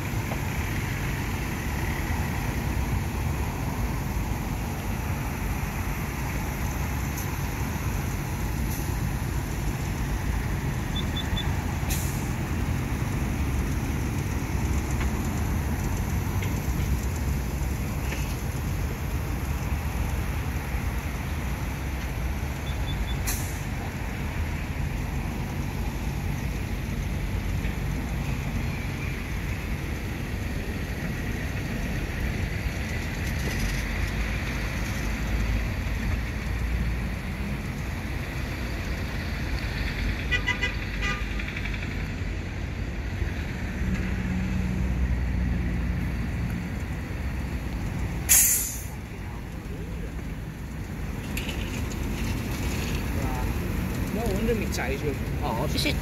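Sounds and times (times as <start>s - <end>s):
sharp air hiss: 11.8s - 12.6s, 23.1s - 23.9s, 48.2s - 49.0s.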